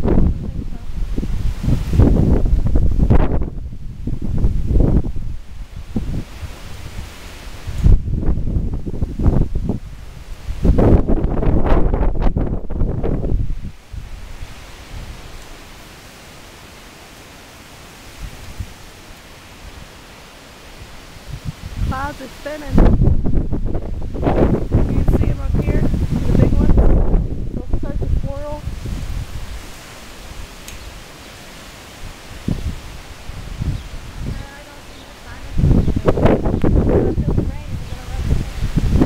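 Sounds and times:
gusty wind buffeting microphone: 0.0 - 15.6, 18.0 - 19.0, 20.7 - 39.0
leaves rustling: 0.0 - 39.0.

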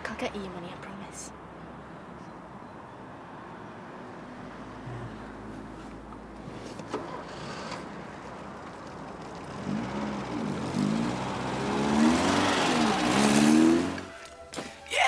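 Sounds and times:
car engine revving: 9.3 - 14.1.

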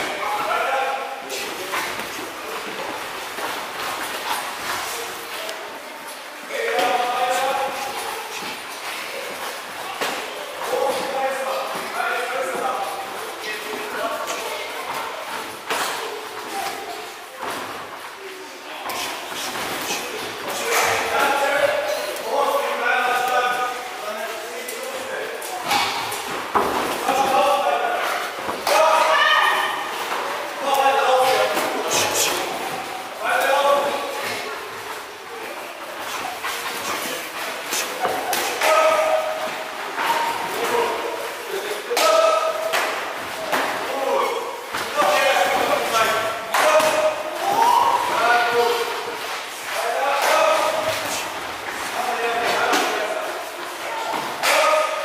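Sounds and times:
voices calling out: 25.6 - 55.0.

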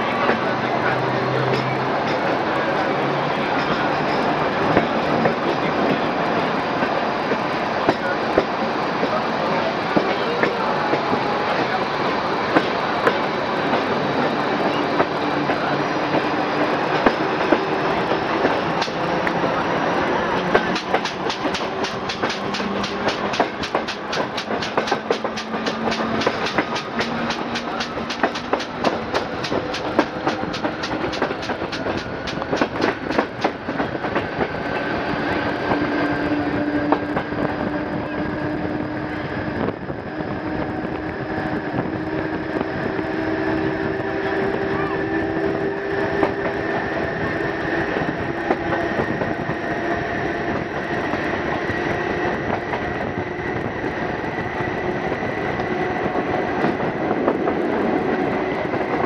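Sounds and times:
train rolling noise: 0.0 - 59.0
wheels clickety-clack over rail joints: 0.0 - 59.0.

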